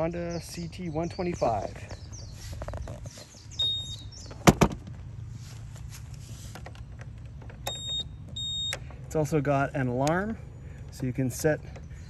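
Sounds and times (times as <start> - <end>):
low steady rumble: 0.0 - 12.0
seat latching knocks: 4.3 - 5.0.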